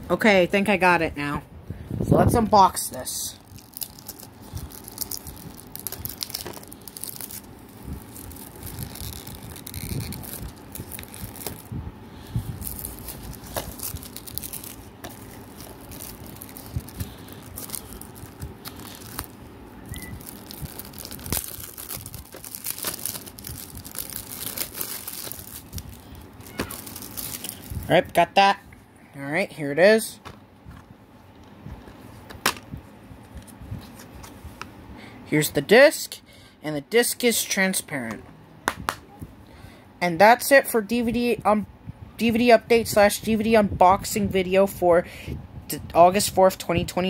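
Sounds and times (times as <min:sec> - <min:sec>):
plastic shrink-wrap tearing and crinkling: 0:03.4 - 0:28.2.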